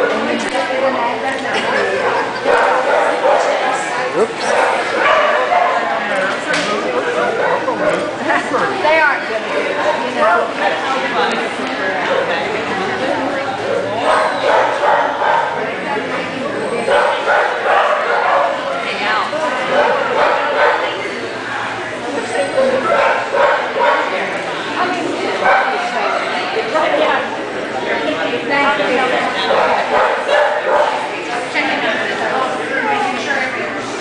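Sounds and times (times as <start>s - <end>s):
chatter of voices: 0.0s - 34.0s
people talking: 0.0s - 34.0s.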